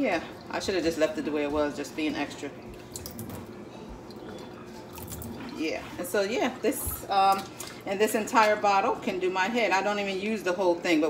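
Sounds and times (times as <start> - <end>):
water pouring into a metal sink: 2.6 - 5.7.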